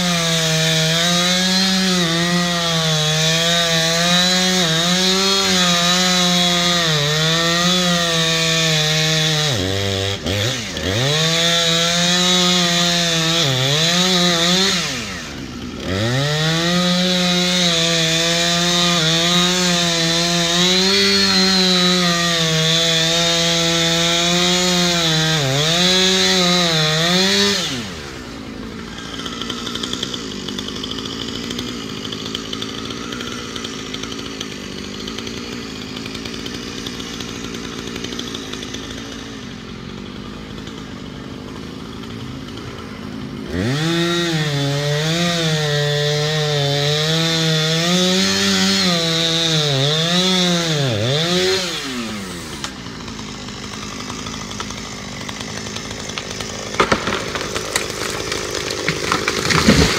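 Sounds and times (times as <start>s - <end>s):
chainsaw idling and cutting wood: 0.0s - 59.9s
wood cracking: 51.1s - 59.9s.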